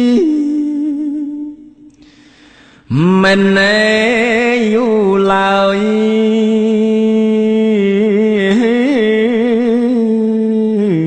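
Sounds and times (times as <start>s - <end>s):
man chanting slowly: 2.9s - 11.0s.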